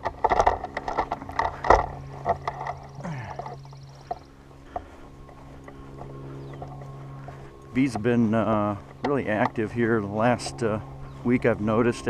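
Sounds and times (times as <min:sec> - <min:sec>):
faint outdoor sounds: 0:00.0 - 0:12.0
steady low hum: 0:00.0 - 0:12.0.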